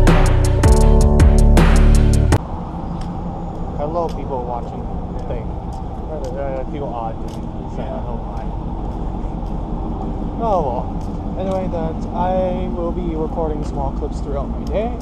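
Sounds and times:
city street traffic rumble: 0.0s - 15.0s
indistinct voices: 2.5s - 15.0s.

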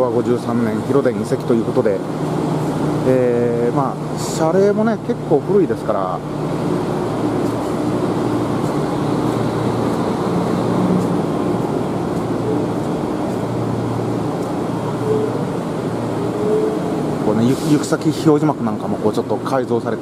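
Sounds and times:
air conditioner humming: 0.0s - 20.0s.

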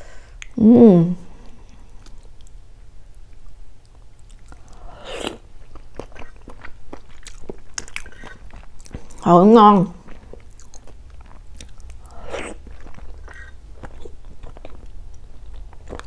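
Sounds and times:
soft chewing: 1.4s - 9.3s, 9.9s - 16.0s.

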